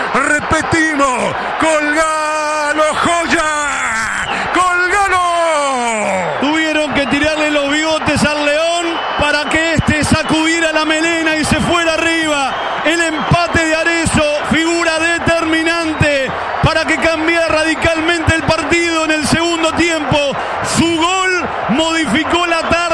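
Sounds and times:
man commentating rapidly: 0:00.0 - 0:22.9.

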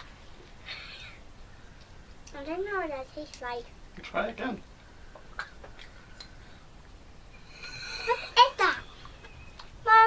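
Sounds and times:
child's voice: 0:02.3 - 0:03.7, 0:08.1 - 0:08.9.

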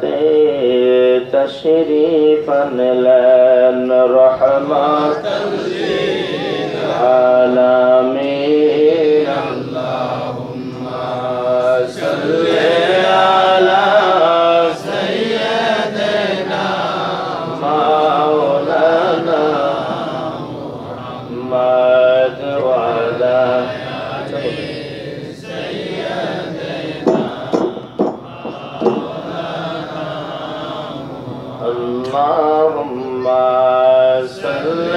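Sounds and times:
man chanting into a microphone: 0:00.0 - 0:16.5, 0:17.5 - 0:24.7, 0:31.4 - 0:34.9.

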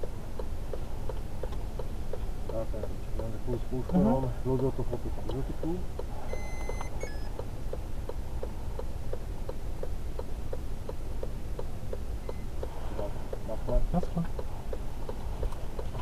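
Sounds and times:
turn signal relay ticking: 0:00.0 - 0:16.0
short electronic beep: 0:06.3 - 0:07.3.

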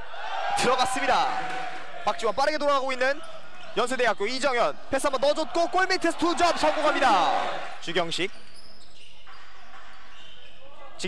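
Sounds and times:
basketball game in indoor gym: 0:00.0 - 0:11.0.

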